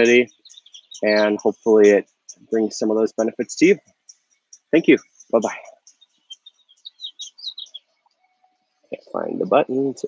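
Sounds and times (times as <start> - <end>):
person speaking: 0.0 - 0.3, 1.0 - 3.8, 4.8 - 5.7, 9.0 - 10.0
small bird chirping: 0.0 - 10.0.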